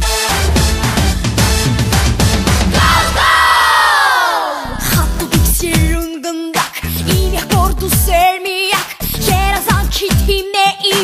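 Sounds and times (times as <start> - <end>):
dance-pop beat: 0.0 - 11.0
group shouting a descending call: 2.8 - 4.7.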